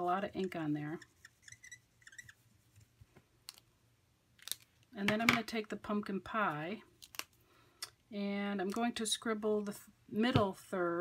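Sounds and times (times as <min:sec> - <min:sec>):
marker squeaking on acrylic: 0:00.3 - 0:02.5.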